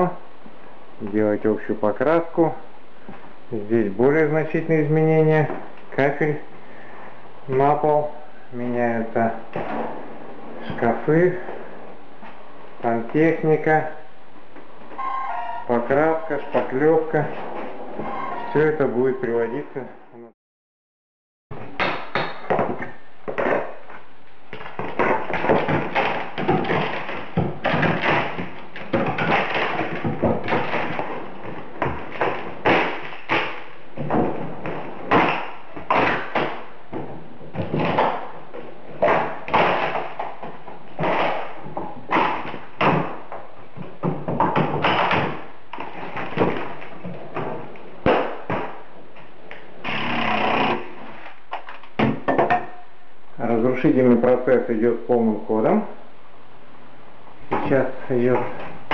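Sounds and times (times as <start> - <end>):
knocks and bangs of demolition: 24.7 - 38.3.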